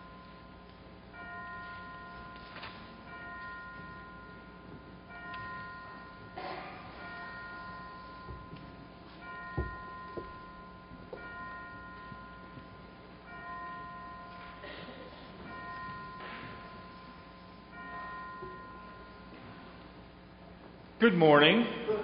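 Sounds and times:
bell chimes ringing: 0.0 - 19.9.

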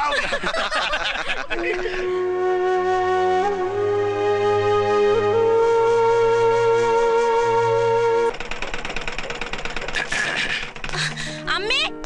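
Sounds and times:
background music note: 1.5 - 8.3
sewing machine stitching: 8.3 - 11.1.

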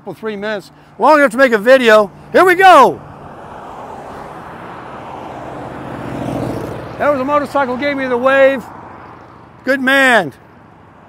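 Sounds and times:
cars passing: 0.0 - 11.0
motorcycle passing: 1.7 - 11.0.

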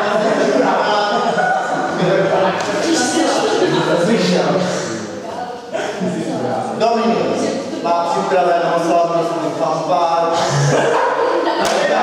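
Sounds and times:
voices in a large hall: 0.0 - 12.0
man speaking over a microphone: 2.0 - 5.1, 5.8 - 10.8.

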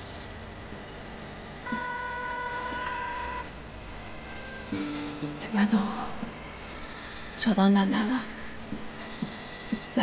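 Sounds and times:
phone ringing tone: 1.6 - 3.6, 4.3 - 4.8.

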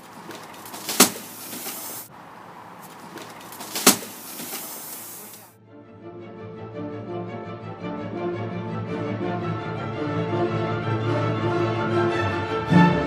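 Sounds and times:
rustling handling noise: 0.0 - 5.5
sharp knocks: 0.3 - 1.8, 3.0 - 4.5
music: 5.6 - 13.0.

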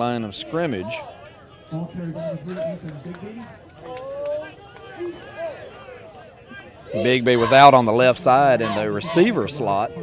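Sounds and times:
men talking and calling: 0.0 - 10.0
play-by-play commentary: 0.0 - 10.0.

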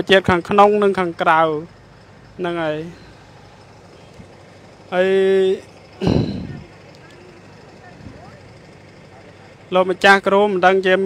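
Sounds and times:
coach bus idling: 0.0 - 11.0
person speaking: 4.9 - 8.4.

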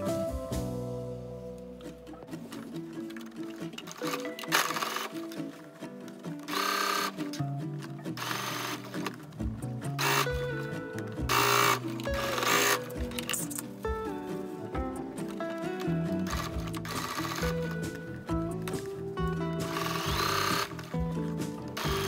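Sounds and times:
background music: 0.0 - 22.0
sewing machine stitching: 3.2 - 5.5, 6.1 - 7.4, 8.2 - 9.2, 9.9 - 10.4, 11.2 - 13.8, 15.2 - 18.0, 19.5 - 22.0.

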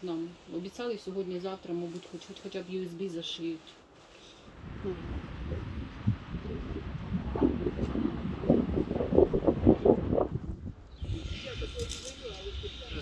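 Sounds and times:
steady low rumble: 2.6 - 13.0
indistinct voices talking: 11.0 - 13.0.

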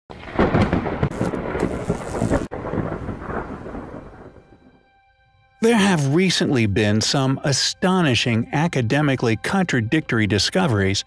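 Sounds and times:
thunder crackling and rumbling: 0.1 - 4.8.

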